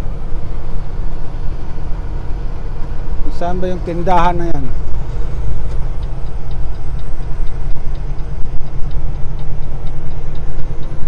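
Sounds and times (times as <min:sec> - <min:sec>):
diesel engine droning: 0:00.0 - 0:11.0
turn signal ticking: 0:02.7 - 0:11.0.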